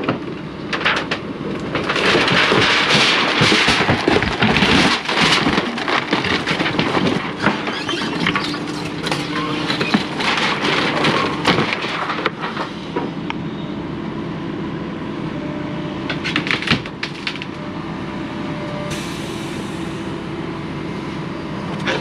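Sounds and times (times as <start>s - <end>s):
wood cracking and splintering: 0.0s - 13.1s, 16.1s - 17.6s
excavator engine running: 0.0s - 22.0s
debris clattering: 0.7s - 12.7s.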